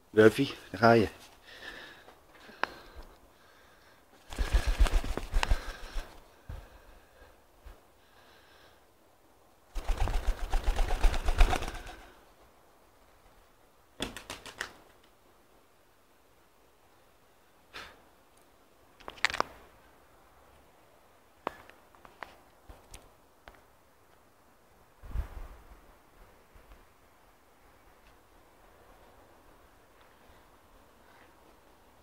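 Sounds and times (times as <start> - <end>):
pigeon wings flapping: 4.3 - 6.2, 9.7 - 12.2, 14.0 - 15.0.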